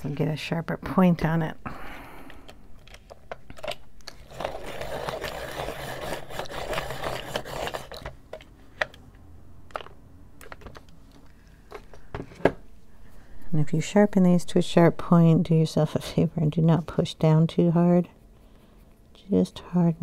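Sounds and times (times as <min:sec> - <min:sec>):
pencil sharpening grind: 0:04.3 - 0:08.1.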